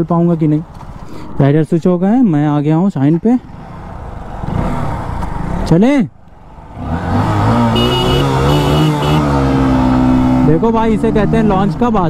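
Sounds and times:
motorcycle engines revving: 0:03.4 - 0:12.0.

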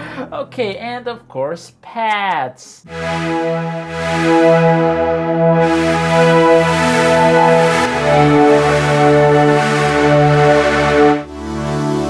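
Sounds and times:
synth accordion-like chords: 0:02.9 - 0:12.0.

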